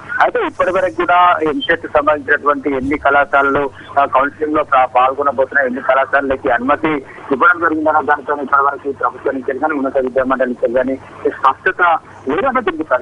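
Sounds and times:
person talking over telephone: 0.0 - 13.0.

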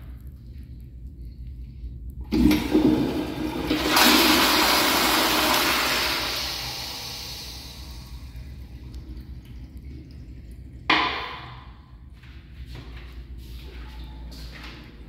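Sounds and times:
toilet flushing: 2.3 - 11.8
water refill trickle: 2.3 - 12.1
toilet seat clack: 10.9 - 11.6.

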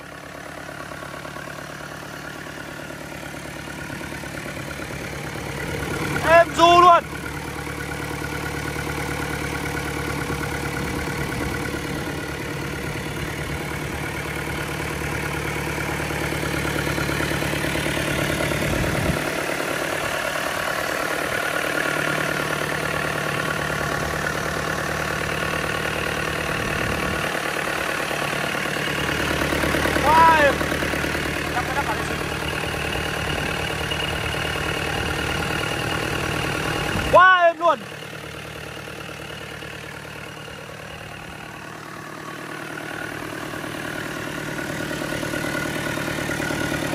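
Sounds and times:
diesel engine idling: 0.0 - 46.9.

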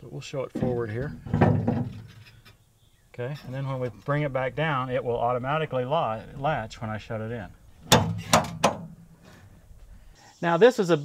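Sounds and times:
metal bracket clunk and scrape: 0.6 - 2.6, 7.8 - 9.5.

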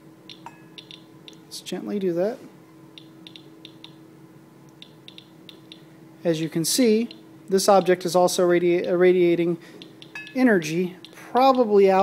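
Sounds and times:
faint steady hum: 0.0 - 12.0
geiger counter clicking: 0.3 - 1.4, 3.0 - 4.0, 4.7 - 5.8, 8.8 - 9.0, 9.8 - 10.4, 11.0 - 11.6.

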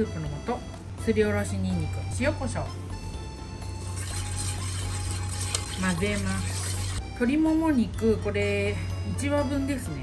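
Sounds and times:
hand stirring rice in water: 3.9 - 7.0.

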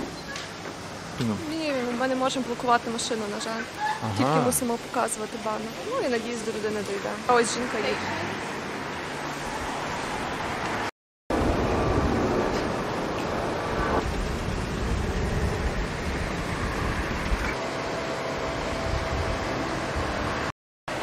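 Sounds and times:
road traffic noise: 0.0 - 21.0.

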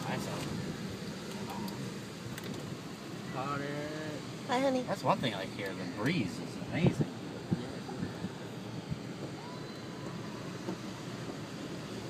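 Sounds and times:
engine and tyres humming: 0.0 - 12.0
wind through open window: 0.0 - 12.0.

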